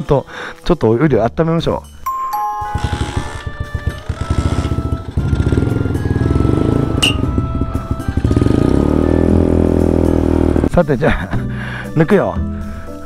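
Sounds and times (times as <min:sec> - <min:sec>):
background music: 0:00.0 - 0:13.0
small single-cylinder engine running: 0:02.7 - 0:09.6.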